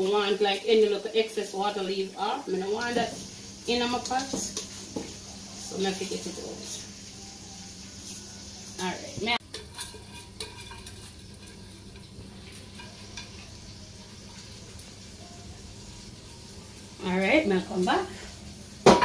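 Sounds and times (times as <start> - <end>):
pot simmering hiss: 0.0 - 19.0.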